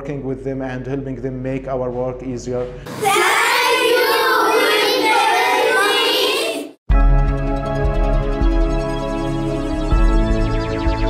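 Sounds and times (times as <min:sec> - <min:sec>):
children singing in unison: 0:02.9 - 0:06.8.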